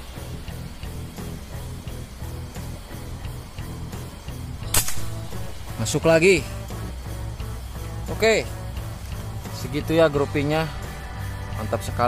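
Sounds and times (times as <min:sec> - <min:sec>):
background music: 0:00.0 - 0:12.0
air rifle shot: 0:04.7 - 0:05.4.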